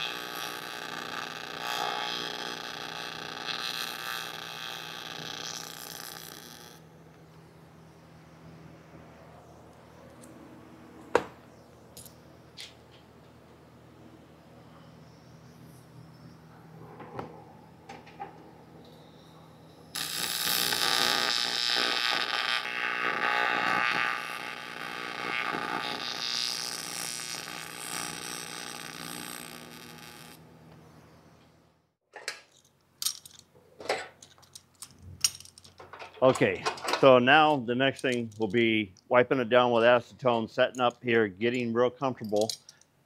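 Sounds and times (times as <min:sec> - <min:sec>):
welding arc buzzing hiss: 0:00.0 - 0:06.9, 0:19.9 - 0:30.5
faint low hum: 0:06.8 - 0:20.0.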